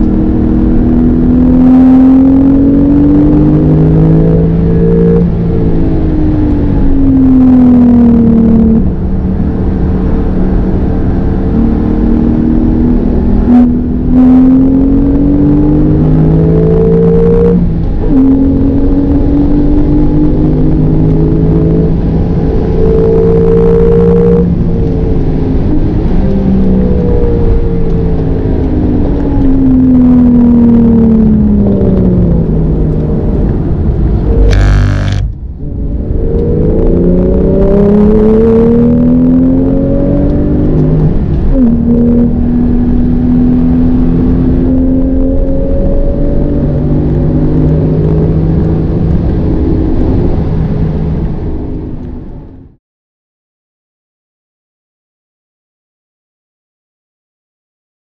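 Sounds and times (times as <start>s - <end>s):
car engine revving in cabin: 0.0s - 52.8s
gear upshifts: 31.7s - 43.1s
brief sharp noise: 34.3s - 35.4s.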